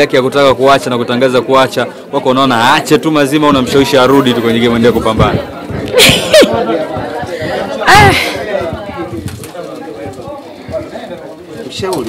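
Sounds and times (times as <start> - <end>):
woman laughing: 6.0 - 6.6.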